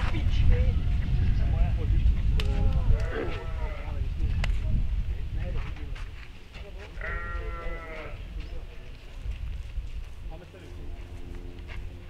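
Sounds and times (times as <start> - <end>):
sheep bleating: 2.9 - 4.0, 7.0 - 8.2.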